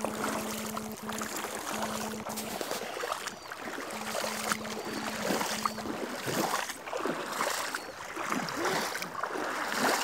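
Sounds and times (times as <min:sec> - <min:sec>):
stream running over pebbles: 0:00.0 - 0:10.0.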